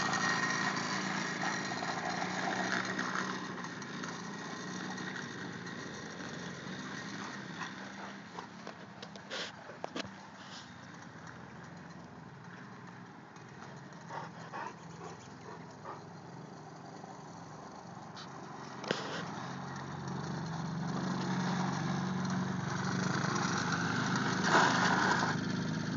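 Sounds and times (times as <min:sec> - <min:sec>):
atv engine running: 0:00.0 - 0:25.9.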